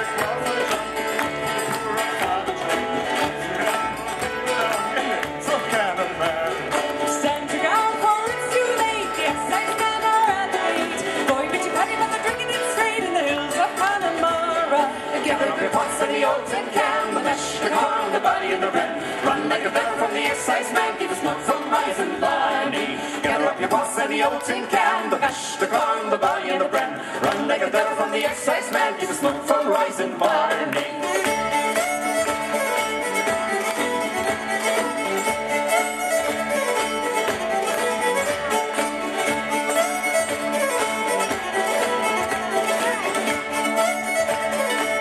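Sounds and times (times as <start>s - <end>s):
acoustic bass guitar: 0.0s - 31.5s
acoustic guitar: 0.0s - 45.0s
fiddle: 0.0s - 45.0s
mandolin: 0.0s - 45.0s.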